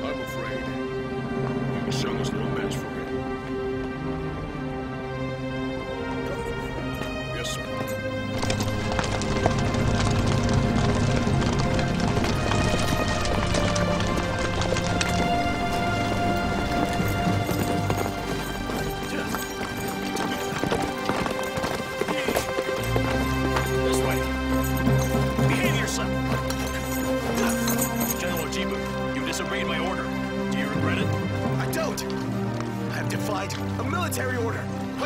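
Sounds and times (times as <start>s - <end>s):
background music with sustained notes: 0.0s - 35.0s
horses hooves clattering: 5.8s - 35.0s.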